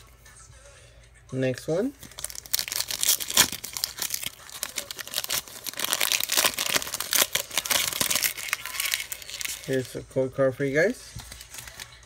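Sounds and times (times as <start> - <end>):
foil wrapper tearing and crinkling: 2.0 - 10.0, 11.2 - 12.0.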